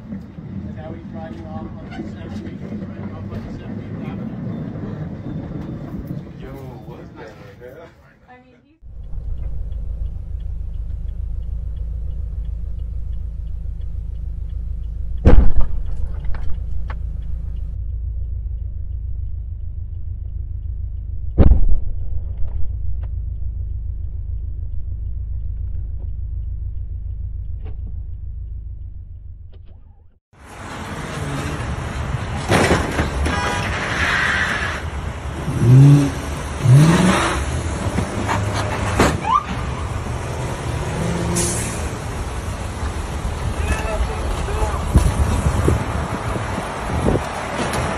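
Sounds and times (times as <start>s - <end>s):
road traffic noise: 0.0s - 47.9s
car interior rumble: 8.8s - 33.9s, 34.9s - 47.9s
sharp loud bang: 15.2s - 16.2s, 21.4s - 22.7s.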